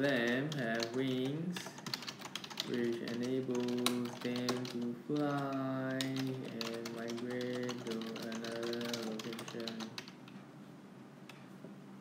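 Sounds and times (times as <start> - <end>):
keyboard typing: 0.0 - 10.3
person humming: 2.7 - 9.8.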